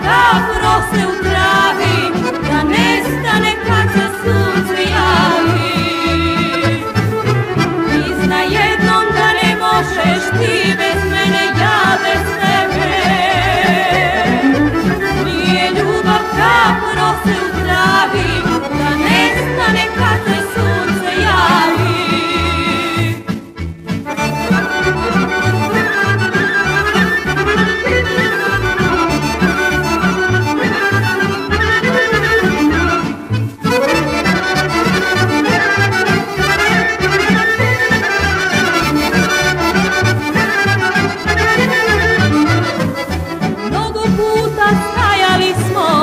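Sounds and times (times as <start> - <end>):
woman singing with vibrato: 0.0 - 7.1, 7.8 - 23.4, 43.7 - 46.0
accordion melody: 0.0 - 46.0
bass line: 0.0 - 46.0
folk band playing: 0.0 - 46.0.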